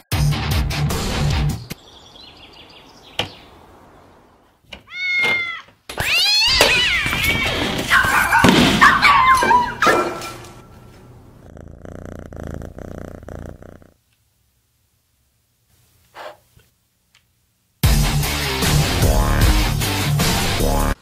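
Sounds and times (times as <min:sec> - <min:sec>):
cats yowling and caterwauling: 0:04.8 - 0:10.2
cat meowing: 0:04.9 - 0:08.1.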